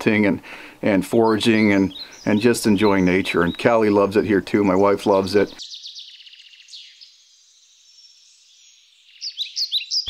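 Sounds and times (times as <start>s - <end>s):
songbird trill: 1.1s - 10.0s
faint bird calls: 1.5s - 3.7s, 5.5s - 10.0s
quick downward-sliding bird chirps: 5.6s - 10.0s.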